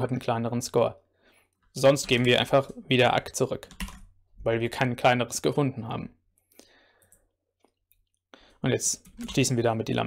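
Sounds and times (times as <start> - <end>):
keyboard keys clicking: 3.6 - 4.1.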